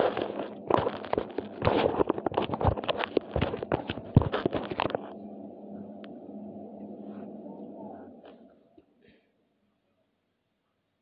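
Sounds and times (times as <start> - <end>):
phone handling crackles and knocks: 0.0 - 5.1
low steady room hum: 0.0 - 11.0.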